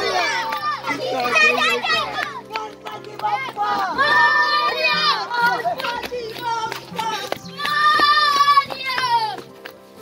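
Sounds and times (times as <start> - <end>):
children shouting and chattering: 0.0 - 9.6.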